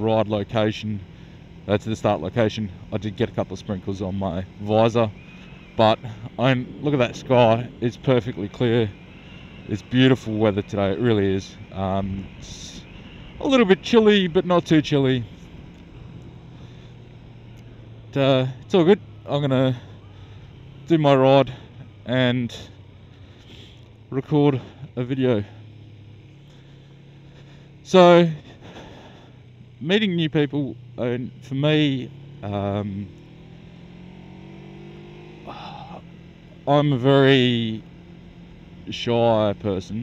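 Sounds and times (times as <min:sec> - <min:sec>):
motorcycle engine hum: 0:00.0 - 0:40.0.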